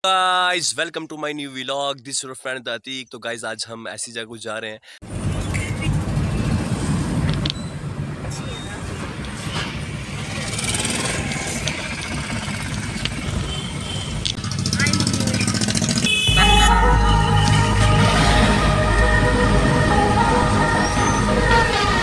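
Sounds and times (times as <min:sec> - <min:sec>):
traffic noise from inside car: 0:05.0 - 0:16.3
motorcycles passing: 0:05.1 - 0:22.0
car horn toot: 0:13.4 - 0:14.3, 0:16.0 - 0:18.7
music with heavy bass: 0:16.0 - 0:22.0.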